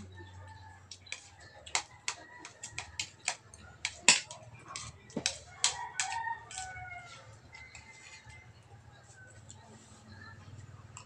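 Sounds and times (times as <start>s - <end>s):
cutlery clinking on plates: 0.9s - 6.8s.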